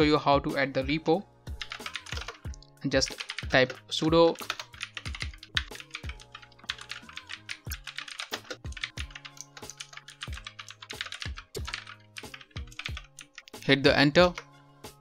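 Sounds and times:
soft background music: 0:00.0 - 0:15.0
computer keyboard typing: 0:01.6 - 0:13.6, 0:14.2 - 0:14.5.

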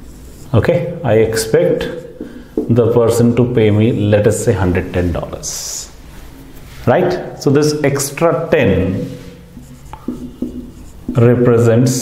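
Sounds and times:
marker writing on a whiteboard: 0:00.0 - 0:12.0.

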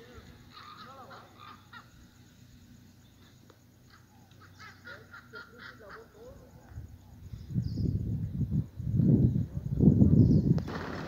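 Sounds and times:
faint wavering bird chirps: 0:00.0 - 0:09.5.

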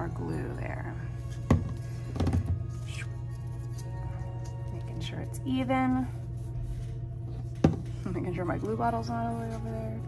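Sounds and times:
soft music with held tones: 0:00.0 - 0:10.0.

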